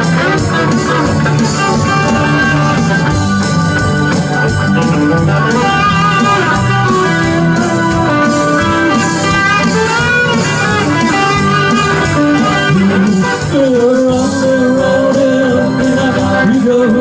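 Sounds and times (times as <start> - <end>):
electric guitar: 0.0 - 17.0
live band playing: 0.0 - 17.0.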